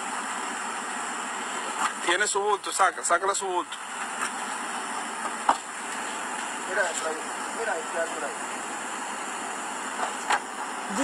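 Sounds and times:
outdoor night background noise: 0:00.0 - 0:11.0.

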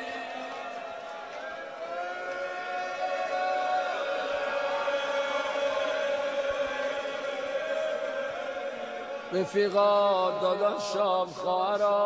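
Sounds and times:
crowd chanting lament: 0:00.0 - 0:12.0.

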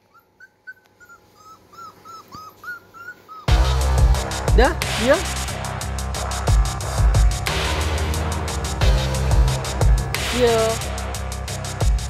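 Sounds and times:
puppy whimpering: 0:00.0 - 0:03.6.

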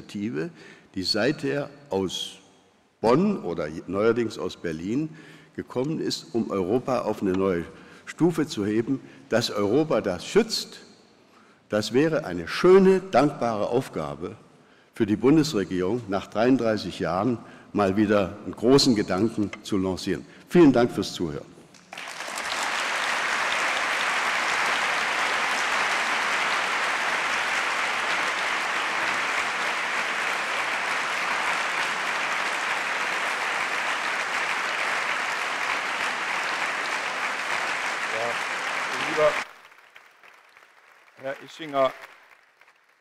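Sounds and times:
audience applauding: 0:21.8 - 0:43.0.

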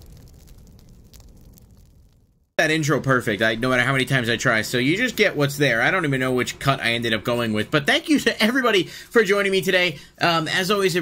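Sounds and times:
low boom rumble: 0:00.0 - 0:05.2
faint crackles: 0:00.0 - 0:05.7.

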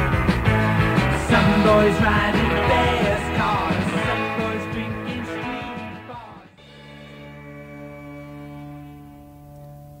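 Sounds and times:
punk rock band playing: 0:00.0 - 0:09.3
held guitar chord ringing: 0:06.6 - 0:10.0.

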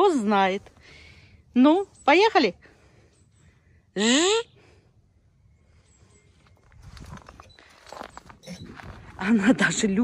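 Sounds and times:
footsteps crunching on snow: 0:06.5 - 0:09.5.

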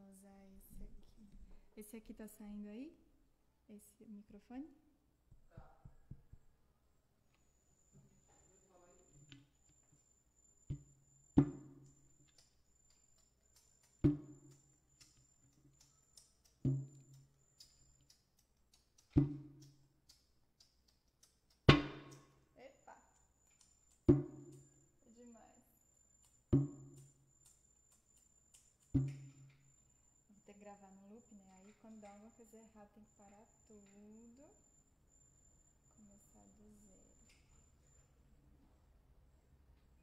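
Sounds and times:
hand drum hits: 0:21.7 - 0:22.2, 0:24.1 - 0:24.6.

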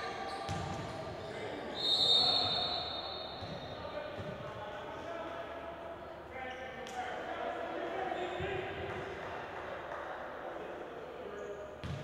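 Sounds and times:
voices in echoing gym: 0:00.0 - 0:12.0.

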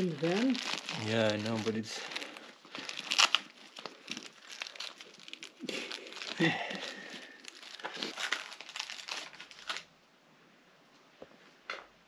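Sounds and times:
plastic and nylon crinkling: 0:00.0 - 0:09.9.

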